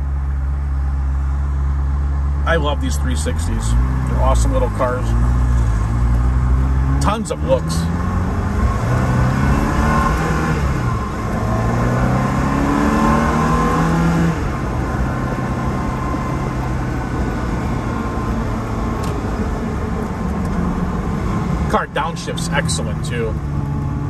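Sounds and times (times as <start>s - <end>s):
road and wind noise: 0.0s - 24.0s
sports car engine accelerating: 0.0s - 24.0s.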